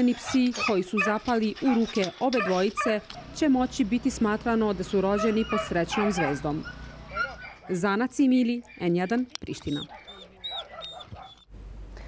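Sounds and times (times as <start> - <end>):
dog whining: 0.0 - 3.0, 5.0 - 7.8, 9.6 - 11.5.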